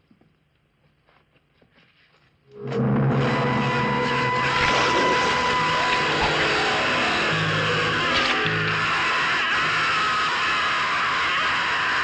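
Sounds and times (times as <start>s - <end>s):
horror film soundtrack: 2.5s - 12.0s.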